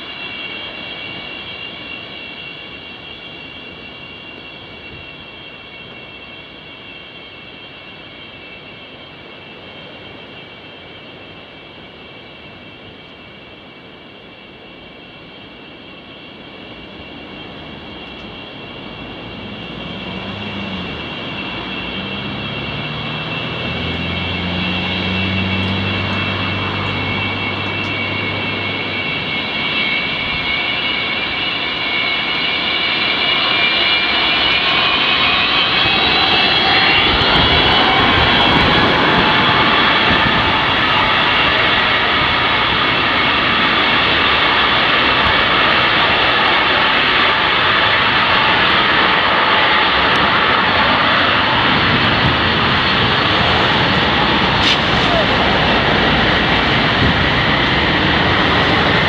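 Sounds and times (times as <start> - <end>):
jet engine high whine: 0.0 - 59.0
jet engines roaring: 0.0 - 59.0.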